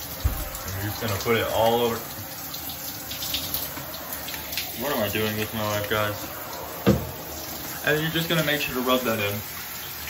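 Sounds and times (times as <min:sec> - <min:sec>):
water running in bathroom: 0:00.0 - 0:10.0.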